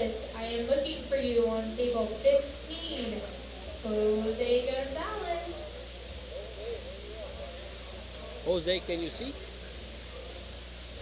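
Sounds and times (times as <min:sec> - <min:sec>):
faint indistinct talking: 0:00.0 - 0:11.0
steady low hum: 0:00.0 - 0:11.0.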